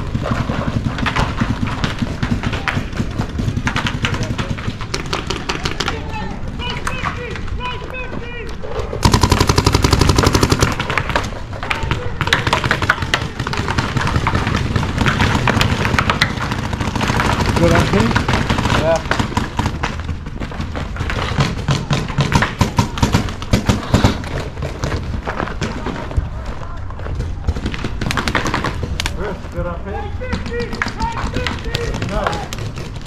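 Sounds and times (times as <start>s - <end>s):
paintball markers firing: 0.0s - 7.6s, 9.0s - 26.2s, 26.8s - 29.4s, 30.2s - 33.0s.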